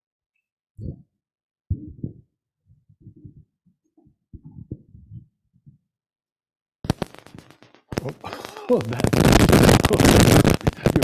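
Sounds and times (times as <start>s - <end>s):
muffled person speaking: 7.9s - 11.0s.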